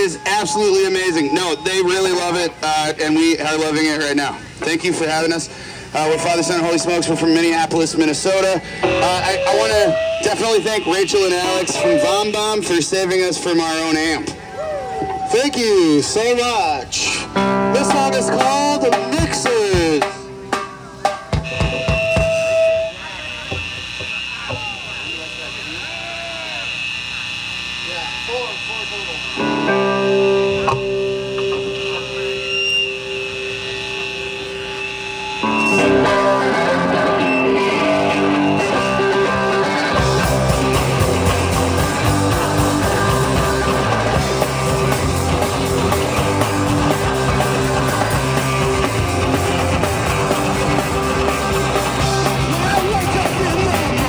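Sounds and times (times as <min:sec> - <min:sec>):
rock band playing loud: 0:00.0 - 0:24.8, 0:29.2 - 0:54.0
electric guitar notes: 0:00.0 - 0:54.0
sustained guitar chords: 0:00.0 - 0:54.0
drum kit: 0:17.3 - 0:24.8, 0:35.4 - 0:54.0.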